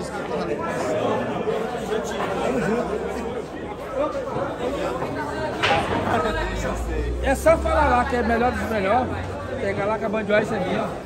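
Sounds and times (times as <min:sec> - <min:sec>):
crowd chattering in echoing hall: 0:00.0 - 0:11.0.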